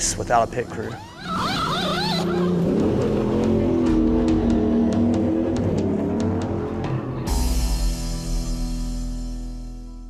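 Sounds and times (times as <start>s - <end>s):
race car engine running: 0.7s - 7.1s.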